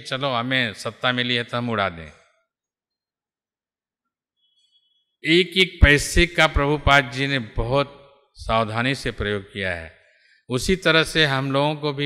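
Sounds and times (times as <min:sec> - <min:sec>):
man speaking: 0:00.0 - 0:02.1, 0:05.2 - 0:09.9, 0:10.5 - 0:12.0.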